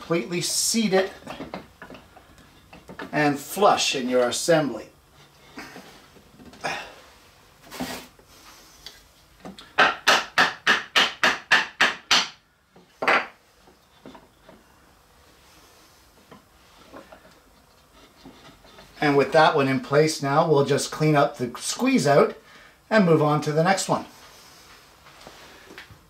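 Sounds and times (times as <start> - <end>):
soft knocks of wooden parts handled: 1.2 - 3.2, 12.7 - 14.7
wooden mallet tapping wood: 9.6 - 12.4.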